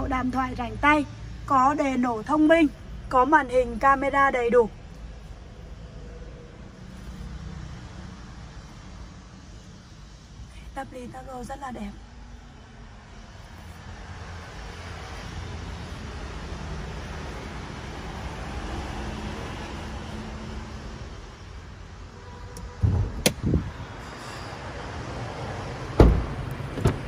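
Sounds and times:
car door shutting: 26.0s - 27.0s.

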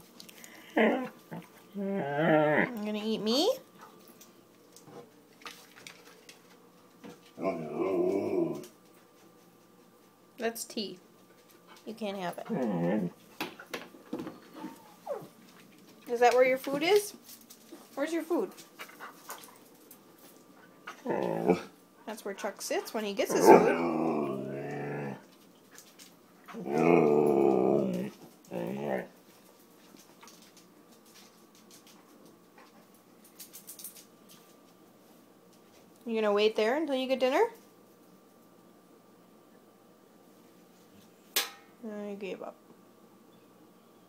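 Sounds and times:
dog howl-like grumbling: 1.8s - 2.8s, 7.4s - 8.7s, 12.5s - 13.2s, 21.0s - 21.7s, 23.3s - 25.2s, 26.5s - 29.1s.

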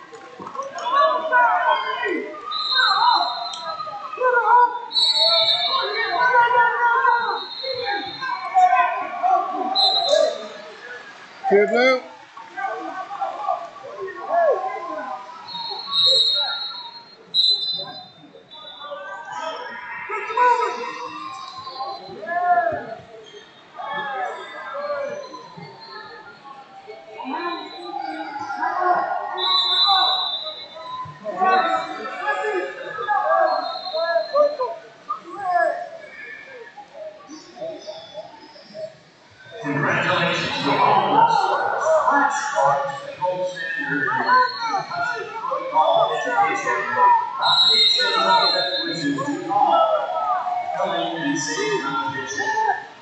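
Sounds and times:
people shouting: 0.0s - 10.8s, 43.8s - 52.8s
loud shouting: 0.0s - 53.0s
people calling out in sports hall: 0.0s - 53.0s
whistle blasts: 2.5s - 3.8s, 4.9s - 6.0s, 15.5s - 19.0s, 29.4s - 31.1s, 47.4s - 49.0s.

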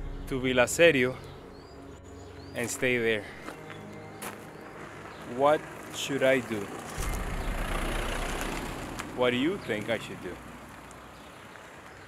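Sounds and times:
car passing close by: 4.9s - 10.9s.

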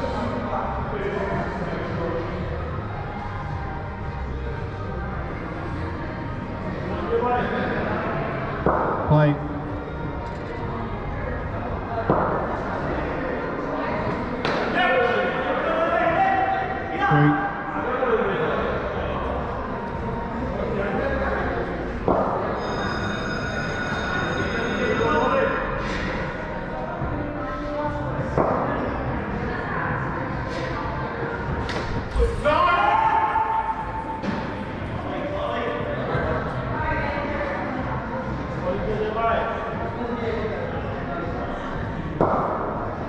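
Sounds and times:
players calling in echoing hall: 14.6s - 19.5s, 32.0s - 37.2s.

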